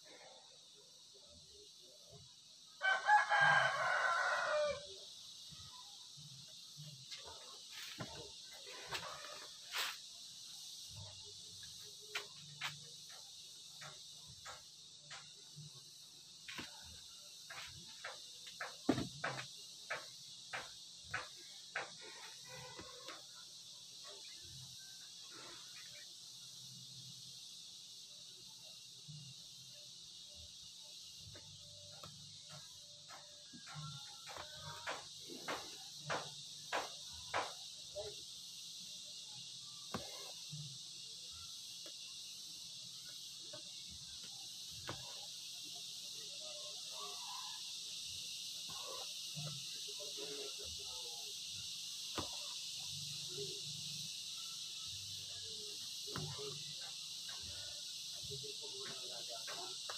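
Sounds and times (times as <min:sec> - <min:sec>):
faint distant voices: 0:00.0 - 0:59.9
insects chirring: 0:00.0 - 0:59.9.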